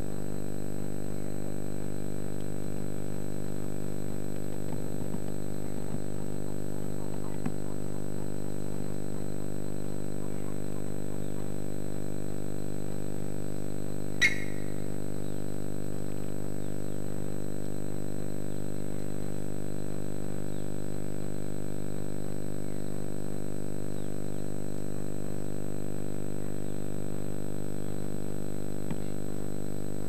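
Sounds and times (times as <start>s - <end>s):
steady low hum: 0.0s - 30.0s
thin high whine: 13.8s - 15.5s.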